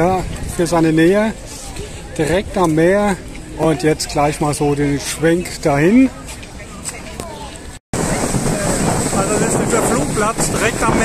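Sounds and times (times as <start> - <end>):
wind buffeting microphone: 0.0 - 4.2, 5.5 - 11.0
people's voices: 0.0 - 11.0.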